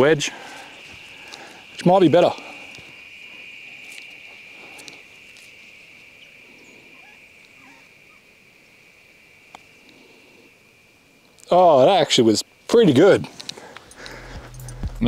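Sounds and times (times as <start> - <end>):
insects droning: 0.0 - 15.0.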